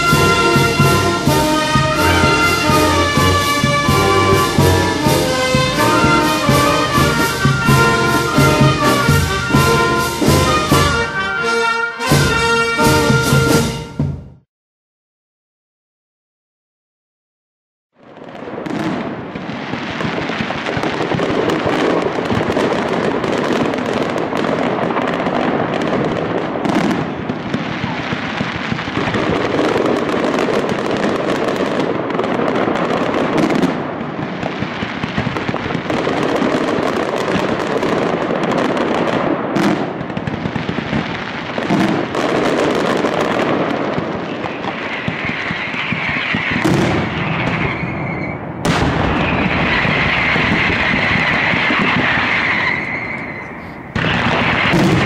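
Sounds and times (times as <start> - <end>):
firecrackers bursting overhead: 0.0 - 14.4, 18.0 - 55.0.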